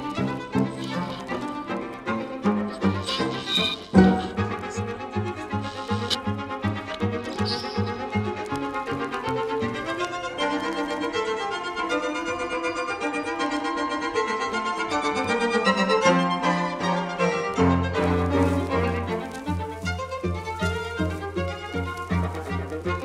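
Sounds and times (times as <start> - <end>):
classical music with violin: 0.0 - 23.0.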